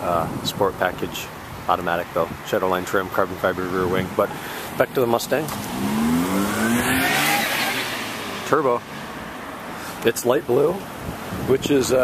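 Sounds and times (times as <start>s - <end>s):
car engine accelerating past: 5.5s - 9.1s.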